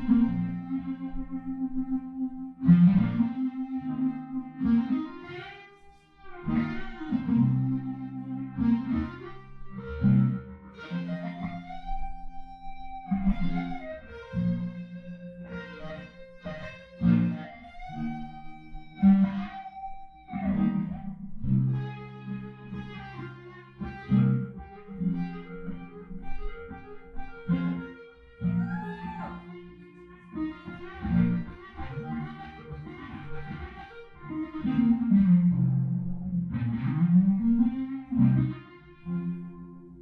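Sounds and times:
electric guitar through amplifier: 0:00.0 - 0:40.0.

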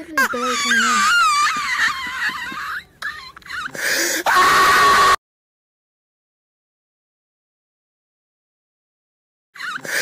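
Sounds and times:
girl squealing: 0:00.2 - 0:01.8, 0:03.1 - 0:05.2.

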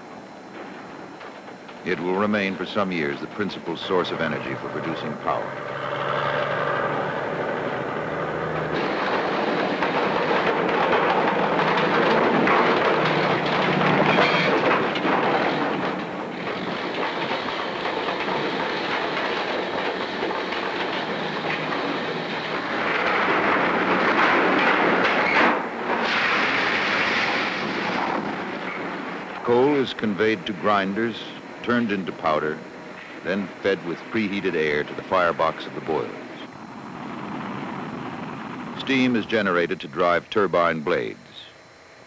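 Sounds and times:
machinery rattling and rumbling: 0:00.0 - 0:39.9.

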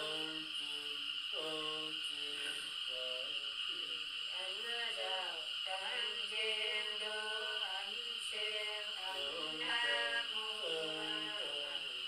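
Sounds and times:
woman singing unaccompanied: 0:00.0 - 0:02.6, 0:04.3 - 0:12.0.

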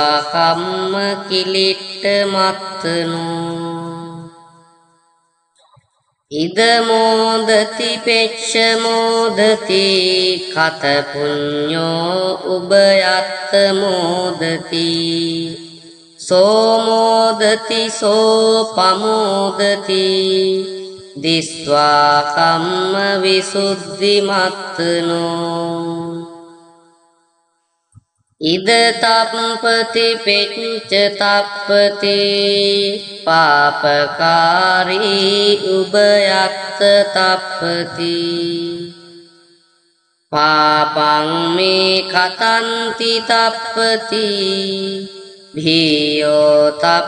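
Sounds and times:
person chanting verse: 0:00.0 - 0:04.5, 0:06.3 - 0:26.5, 0:28.4 - 0:39.2, 0:40.3 - 0:47.0.

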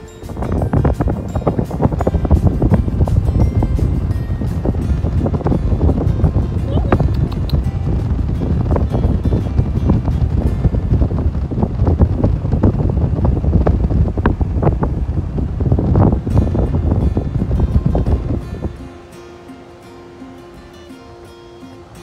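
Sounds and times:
background music: 0:00.0 - 0:11.2
wind buffeting microphone: 0:00.0 - 0:19.8.

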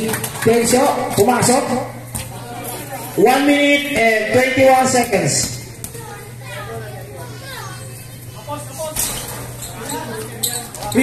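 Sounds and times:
steady low hum: 0:00.0 - 0:11.0
voices and calls of players: 0:00.2 - 0:11.0.

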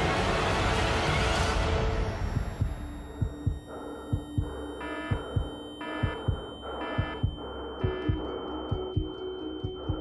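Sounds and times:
short alarm-like beep: 0:02.2 - 0:09.2
heartbeat thumps: 0:02.2 - 0:10.0.

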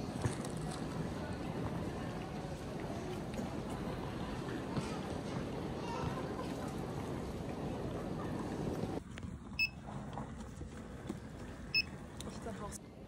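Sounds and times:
airport hall background noise: 0:00.0 - 0:13.0
checkout short electronic beeps: 0:11.7 - 0:11.9.

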